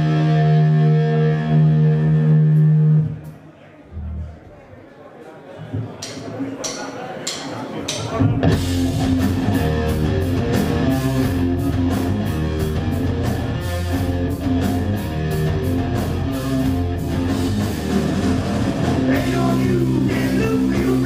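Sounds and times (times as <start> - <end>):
rock band playing: 0.0 - 3.1, 8.2 - 21.0.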